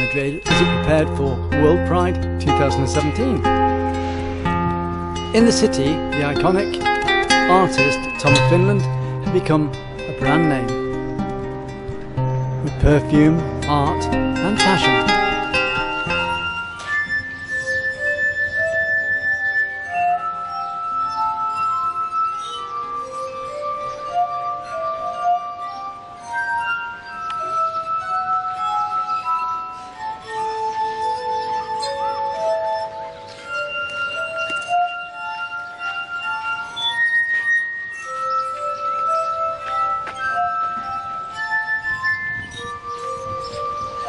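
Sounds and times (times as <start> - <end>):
glass harp melody: 0.0 - 44.0.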